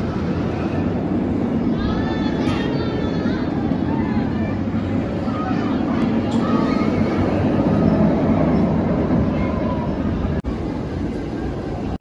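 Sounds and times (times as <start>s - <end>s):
roller coaster train rumbling: 0.0s - 12.0s.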